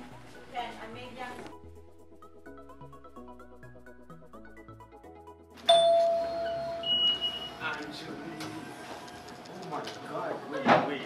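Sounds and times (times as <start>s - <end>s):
chime ding: 5.6s - 7.6s.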